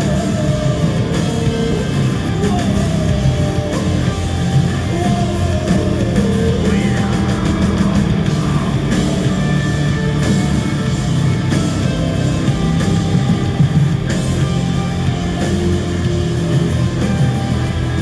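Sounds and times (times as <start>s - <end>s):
live rock band: 0.0s - 18.0s.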